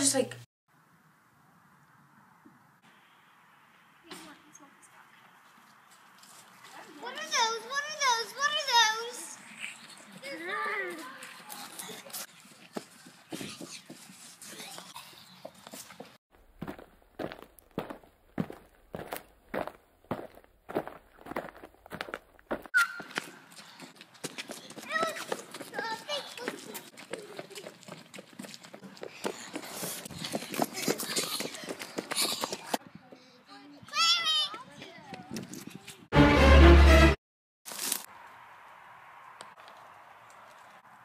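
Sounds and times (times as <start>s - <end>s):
footsteps: 4.1s - 33.2s.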